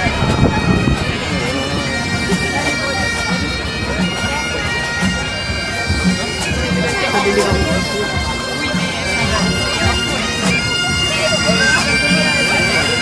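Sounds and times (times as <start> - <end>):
bagpipes playing: 0.0 - 13.0
crowd murmuring: 0.0 - 13.0
low drum beat: 0.0 - 13.0.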